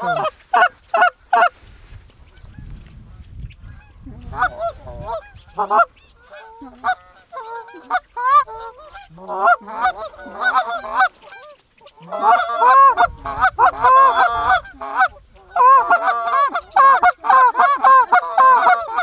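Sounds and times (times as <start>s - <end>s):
geese honking: 0.0s - 1.6s, 2.3s - 19.0s.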